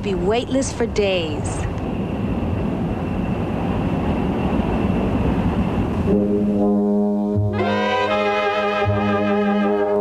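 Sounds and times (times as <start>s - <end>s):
jet cabin roar: 0.0s - 10.0s
faint high whine: 0.2s - 10.0s
sustained brass chords: 6.1s - 10.0s.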